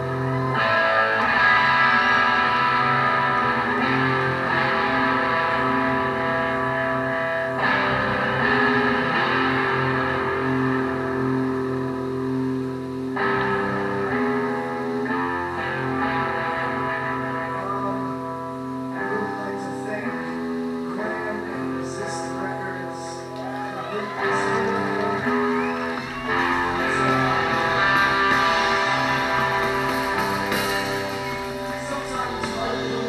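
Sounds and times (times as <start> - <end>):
electric guitar chords: 0.0 - 33.0
rock band playing live: 0.0 - 33.0.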